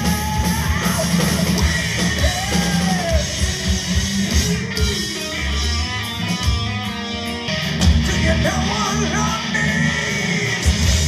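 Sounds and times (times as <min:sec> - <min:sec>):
drum kit: 0:00.0 - 0:11.0
electric guitars: 0:00.0 - 0:11.0
heavy metal band playing live: 0:00.0 - 0:11.0.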